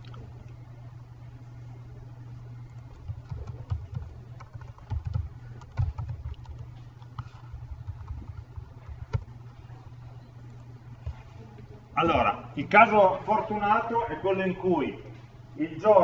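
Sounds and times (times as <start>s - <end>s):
steady low hum: 0.0s - 16.0s
computer keyboard typing: 2.9s - 9.3s.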